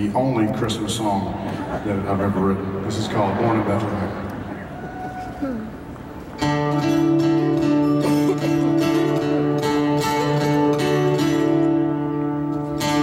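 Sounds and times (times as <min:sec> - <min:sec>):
live band instrumental: 0:03.2 - 0:13.0
plucked guitar notes: 0:06.0 - 0:13.0.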